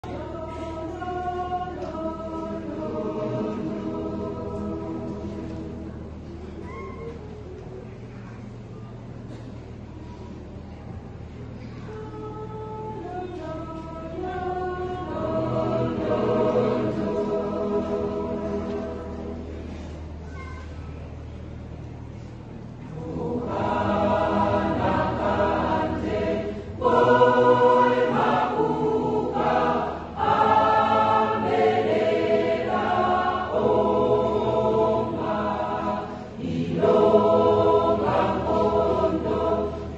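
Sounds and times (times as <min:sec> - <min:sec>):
mixed-voice choir singing: 0:00.0 - 0:06.2, 0:12.3 - 0:20.1, 0:22.8 - 0:39.9
steady low hum: 0:00.0 - 0:39.9.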